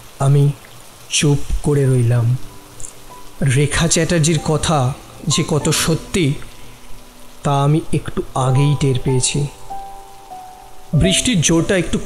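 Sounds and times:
rain: 0.0 - 12.0
soft background music: 0.1 - 12.0
man narrating: 0.2 - 2.5, 3.4 - 6.5, 7.4 - 9.6, 10.9 - 12.0.

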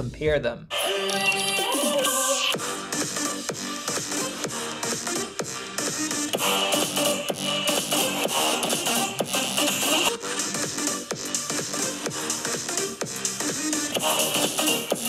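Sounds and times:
electronic dance music through laptop speakers: 0.7 - 15.0.

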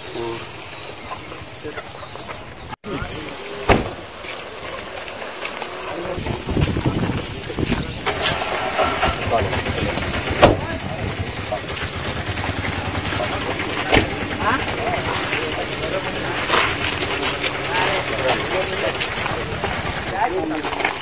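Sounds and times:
men's voices: 0.0 - 21.0
vehicle engine noise: 0.0 - 21.0
sharp knocks: 10.3 - 10.8.

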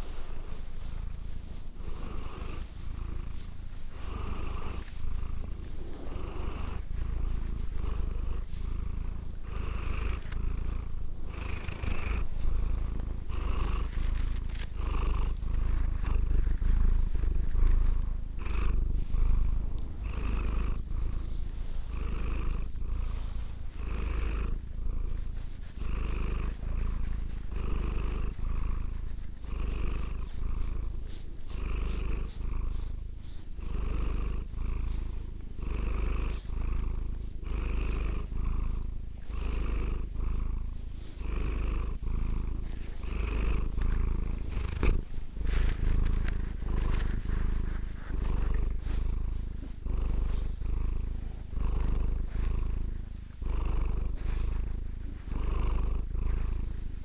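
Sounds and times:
cat purring: 0.0 - 57.0.

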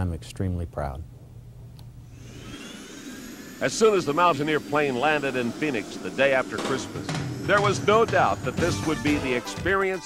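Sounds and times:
low steady hum: 0.0 - 9.7
jet turbine whine: 2.0 - 10.0.

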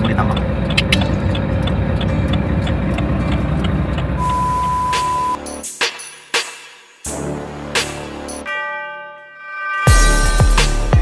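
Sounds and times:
light ticking: 0.0 - 4.4
diesel truck engine idling: 0.0 - 5.4
steady electronic beep: 4.2 - 5.5.

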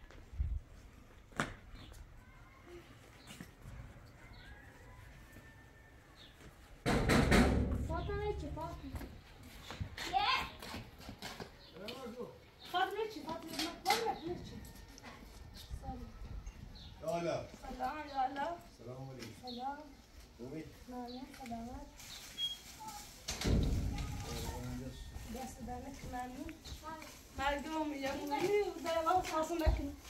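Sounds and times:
voices speaking: 7.8 - 30.0
child speaking: 10.0 - 10.6, 23.9 - 24.6, 26.8 - 27.2.

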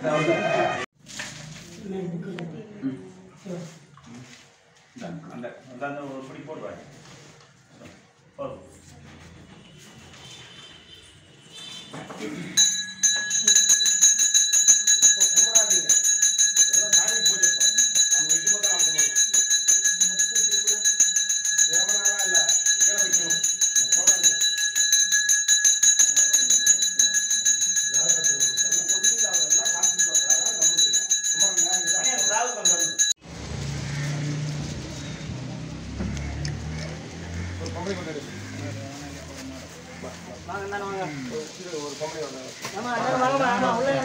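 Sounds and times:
hand bell ringing rapidly: 12.6 - 33.2.

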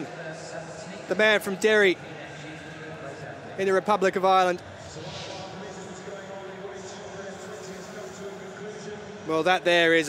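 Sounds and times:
empty stadium ambience: 0.0 - 10.0
brief swoosh: 5.0 - 5.7.

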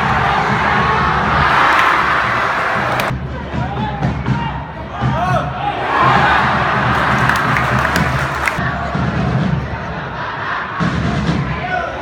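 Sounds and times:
steady drum beat: 0.0 - 9.7
crowd shouting and chanting: 0.0 - 12.0
stadium crowd cheering: 0.0 - 12.0.

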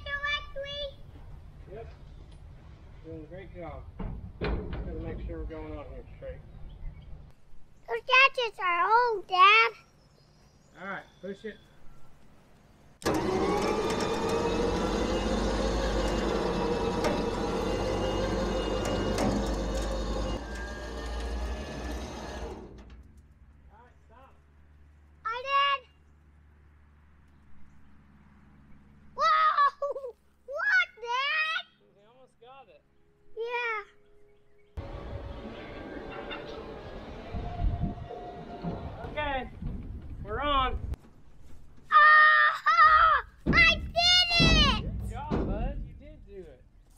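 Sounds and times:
electric winch motor running: 13.0 - 23.2, 34.8 - 39.4.

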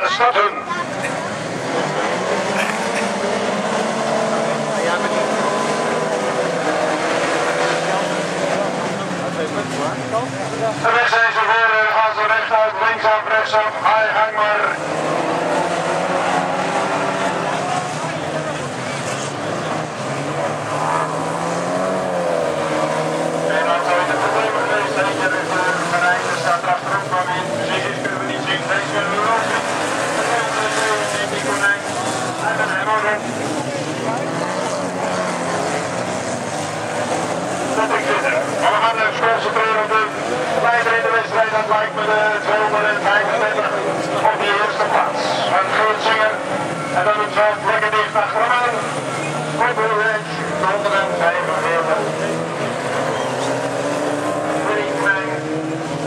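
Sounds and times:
race car engines revving: 0.0 - 56.0.

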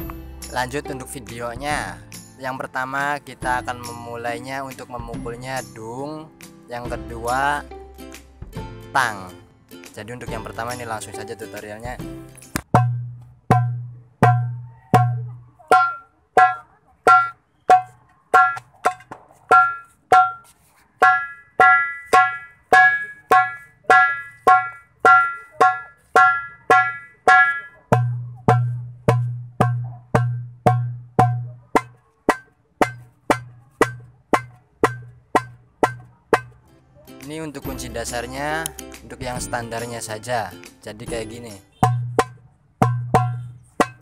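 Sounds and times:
goblet drum strokes: 12.7 - 36.6, 41.7 - 44.0.

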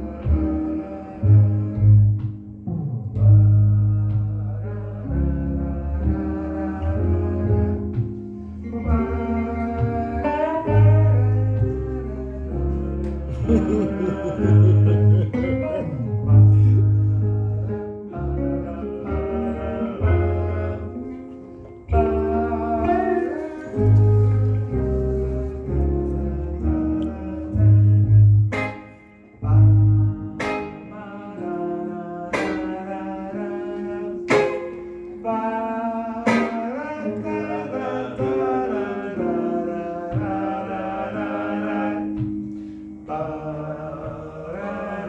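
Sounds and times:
wordless singing: 0.0 - 2.4, 3.1 - 45.0
held low bass notes: 0.0 - 34.2
guitar plucking notes: 0.0 - 45.0.

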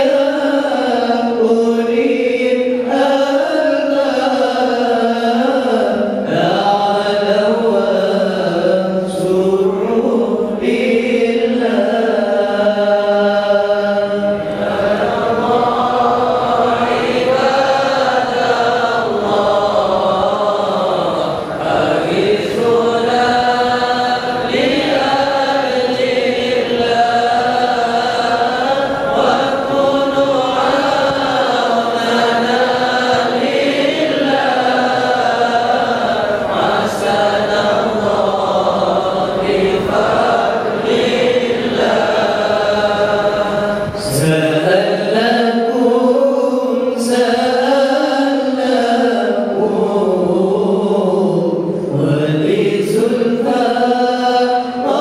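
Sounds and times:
men chanting in unison: 0.0 - 55.0.

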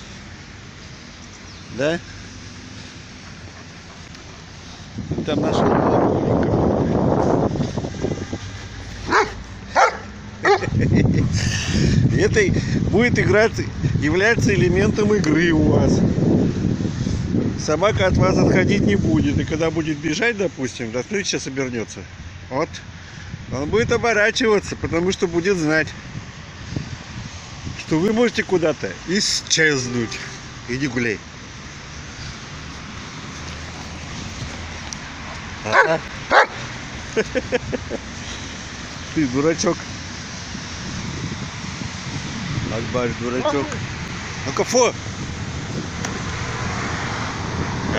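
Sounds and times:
dog barking: 9.1 - 10.7, 35.7 - 36.6
dog yipping: 9.1 - 10.7, 35.7 - 36.6.

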